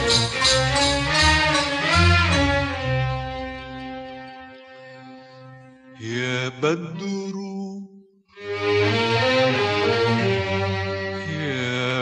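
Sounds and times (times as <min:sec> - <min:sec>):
orchestral strings: 0:00.0 - 0:07.3, 0:08.3 - 0:12.0
man singing ornamented phrase: 0:06.0 - 0:08.2, 0:11.2 - 0:12.0.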